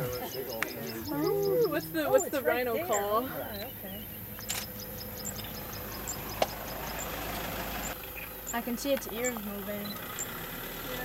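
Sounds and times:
vehicle engine idling: 0.0 - 11.0
sharp click: 4.4 - 4.8.

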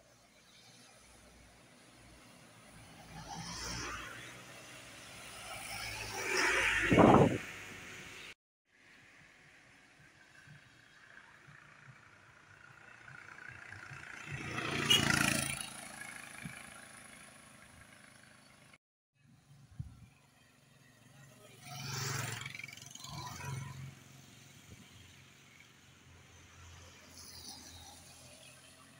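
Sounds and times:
vehicles passing on wet road: 0.1 - 8.4, 9.4 - 18.8.

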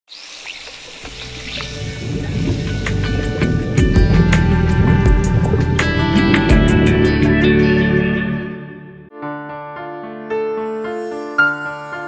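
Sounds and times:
steady hiss: 0.1 - 3.3
low background music: 1.0 - 9.1.

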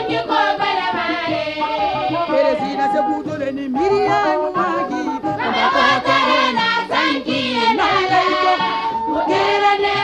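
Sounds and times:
instrumental backing music: 0.0 - 10.0
woman singing: 1.8 - 6.6, 7.2 - 10.0.

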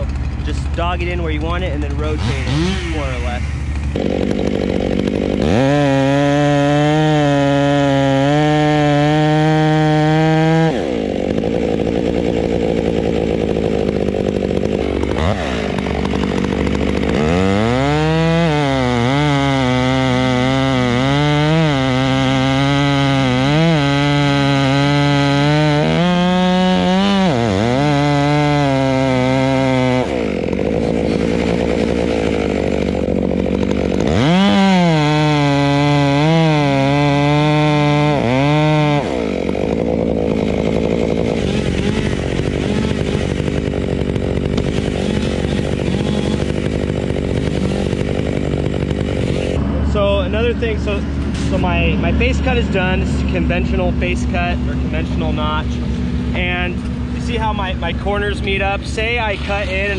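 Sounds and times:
chainsaw cutting wood: 0.0 - 59.9.

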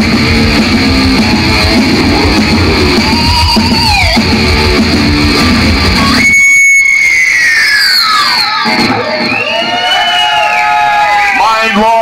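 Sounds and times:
metal band playing live: 0.0 - 6.8
electric guitar feedback: 0.0 - 8.7.

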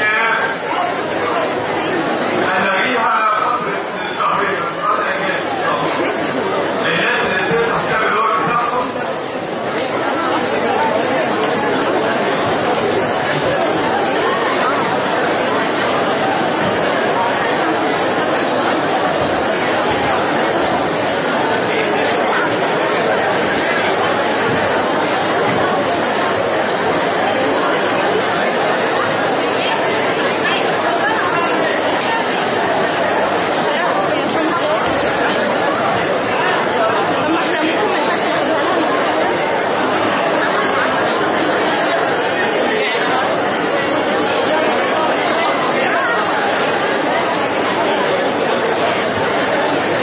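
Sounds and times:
chatter of many voices: 0.0 - 50.0.

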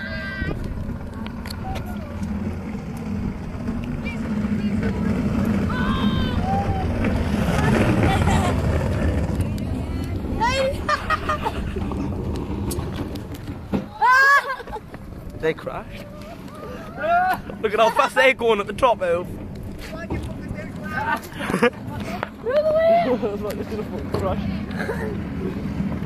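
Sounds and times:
bin wheels rumbling over ground: 0.0 - 26.0
people calling out: 5.6 - 8.6.

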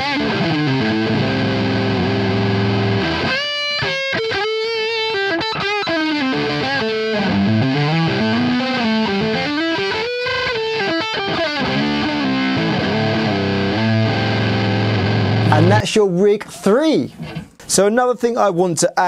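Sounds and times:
distorted electric guitar lead: 0.0 - 15.9.

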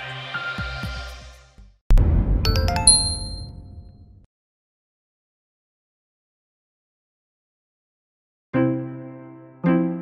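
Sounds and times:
logo sting chime tones: 2.5 - 4.1.

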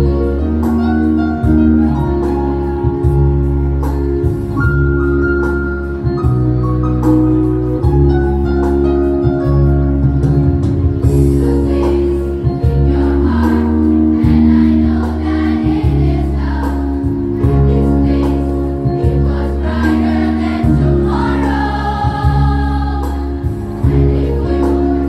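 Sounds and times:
instrumental accompaniment of low notes: 0.0 - 25.0
choir singing: 11.4 - 25.0.

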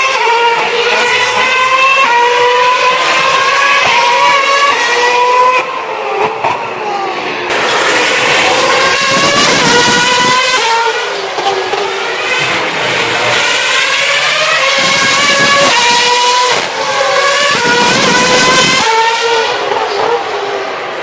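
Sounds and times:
race car engines revving past: 0.0 - 21.0.

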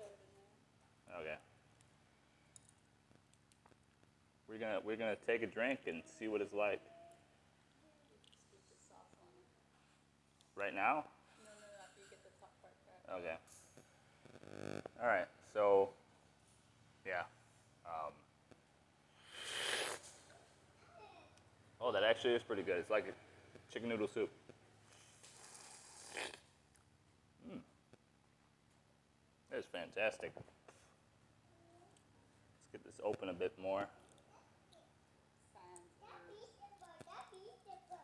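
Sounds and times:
man slurping broth: 19.2 - 20.2, 25.2 - 26.4.

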